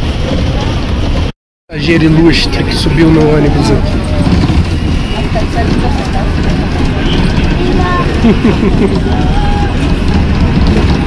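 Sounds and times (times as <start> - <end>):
bus engine and road rumble: 0.0 - 11.0
passenger voices: 0.0 - 11.0.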